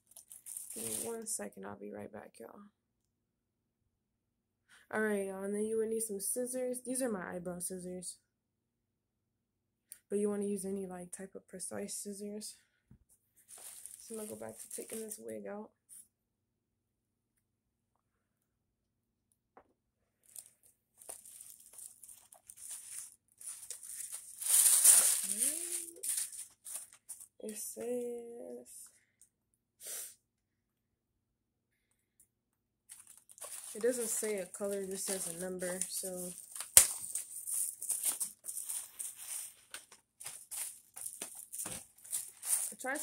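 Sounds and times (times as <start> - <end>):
plastic packaging crinkling: 0.0 - 1.3, 13.5 - 15.2, 20.2 - 27.3, 32.9 - 43.0.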